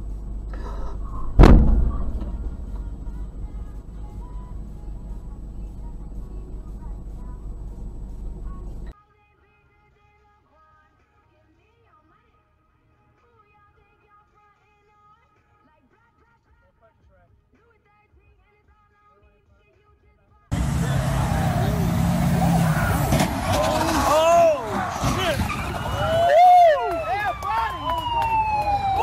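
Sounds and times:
vehicles passing: 0:00.0 - 0:08.9, 0:20.5 - 0:29.0
emergency vehicle siren wailing: 0:20.5 - 0:29.0.

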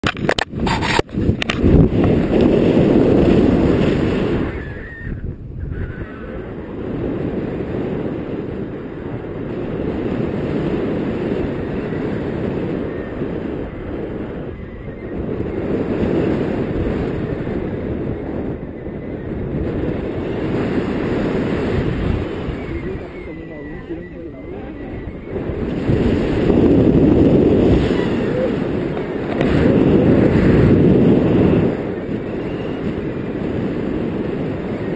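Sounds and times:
wind rushing over microphone: 0:00.0 - 0:34.9.

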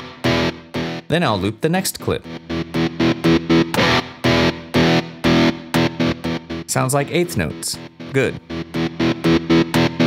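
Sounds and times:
distorted electric guitar tremolo: 0:02.3 - 0:06.7, 0:08.0 - 0:10.0.

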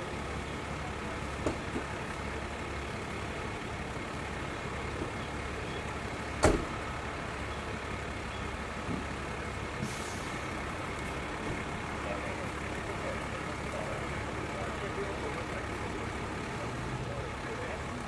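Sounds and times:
heavy vehicle idling: 0:00.0 - 0:18.0.

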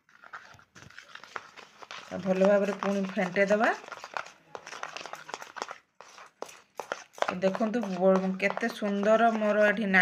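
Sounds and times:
spoon scraping plastic bowl: 0:00.0 - 0:10.0.

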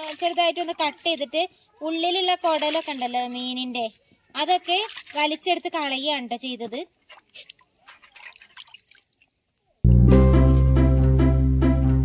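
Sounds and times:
water splashing and dripping: 0:00.0 - 0:09.8.

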